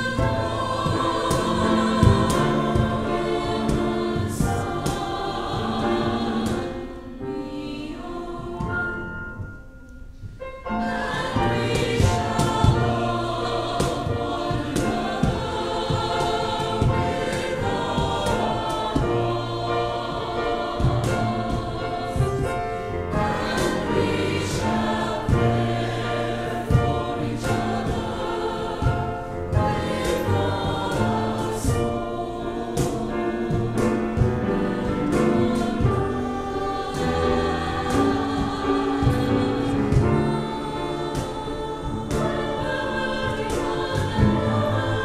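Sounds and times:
choir singing in harmony: 0.0 - 45.0.

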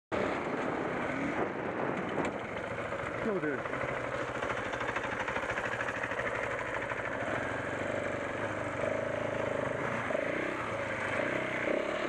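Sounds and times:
motorcycle engine running: 0.2 - 12.0.

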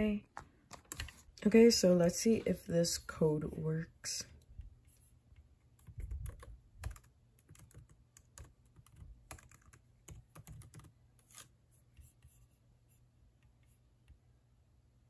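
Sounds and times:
laptop keyboard typing: 0.7 - 1.2, 5.7 - 12.1.

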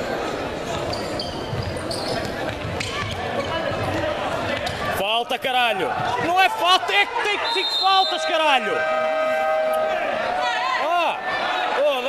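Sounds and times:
spectators chatter: 0.0 - 12.0
players shouting: 2.8 - 12.0.

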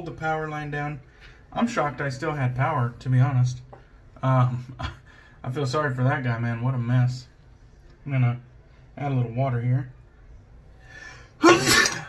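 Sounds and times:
man sneezing: 11.4 - 12.0.

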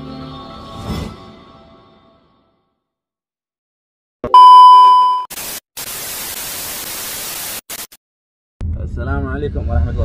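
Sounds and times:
television static hiss: 5.4 - 7.9.

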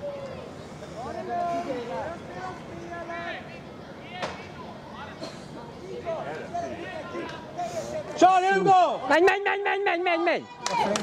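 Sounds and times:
distant shouts and calls: 0.0 - 11.0.

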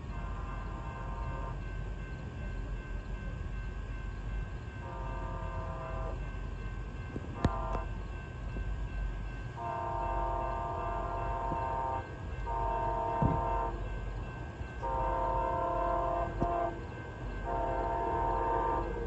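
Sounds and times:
locomotive horn blasts: 0.1 - 1.7, 4.8 - 6.2, 7.4 - 7.9, 9.6 - 13.9, 14.8 - 19.0.

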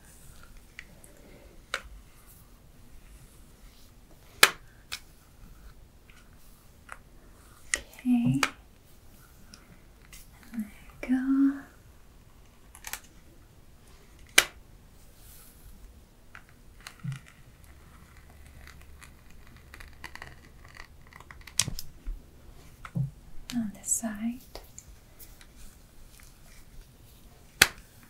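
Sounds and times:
soft handling noise: 0.0 - 11.2, 21.2 - 28.0.

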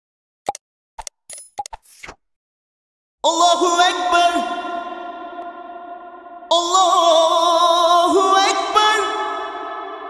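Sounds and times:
short pops and clicks: 0.4 - 2.2.

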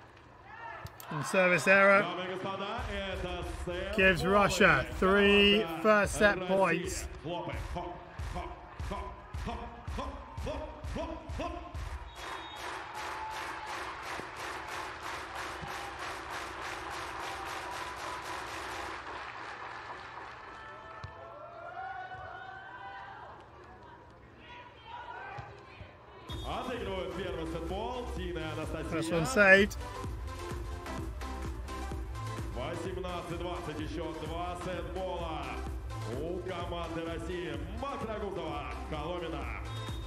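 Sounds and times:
voices: 3.9 - 7.0, 28.8 - 29.8
crowd clapping in rhythm: 4.0 - 21.0.

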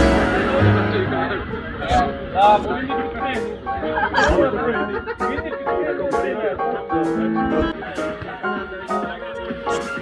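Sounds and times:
background music: 0.0 - 10.0
people chatting: 0.0 - 10.0.

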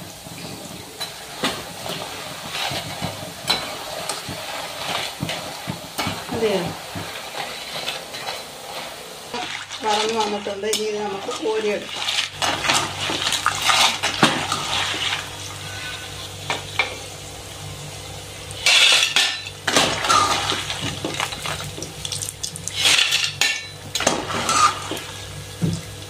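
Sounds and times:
oil frying sizzle: 0.0 - 26.0
steel skimmer scraping steel pan: 6.0 - 16.4, 18.6 - 21.6, 22.7 - 25.2.

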